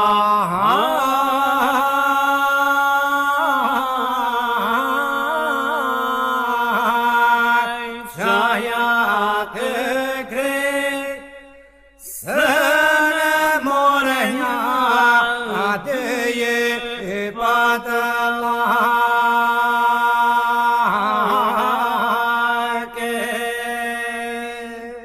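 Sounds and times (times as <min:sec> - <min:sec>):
men singing folk melody: 0:00.0 - 0:11.3, 0:12.0 - 0:23.6
held vocal drone: 0:00.0 - 0:25.0.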